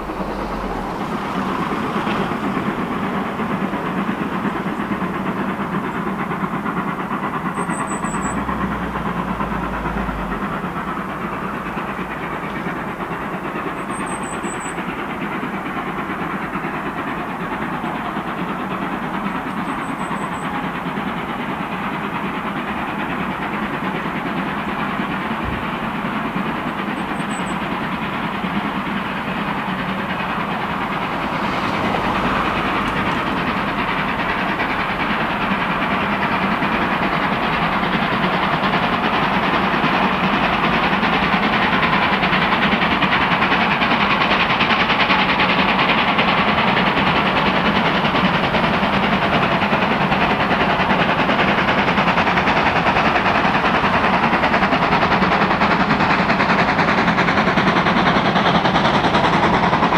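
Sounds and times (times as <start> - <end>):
steam locomotive hauling train: 0.0 - 59.9.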